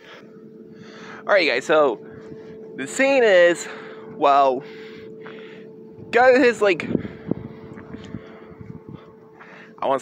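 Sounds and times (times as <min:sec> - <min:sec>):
low rumble: 0:00.0 - 0:09.8
steady background hum: 0:00.0 - 0:10.0.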